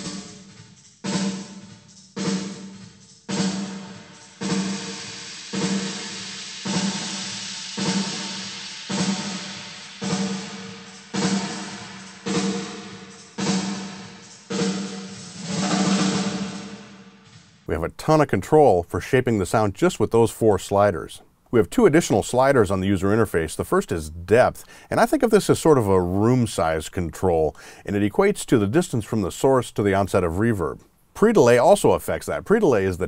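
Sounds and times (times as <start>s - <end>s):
snare drum hits with reverb: 2.2s - 17.7s.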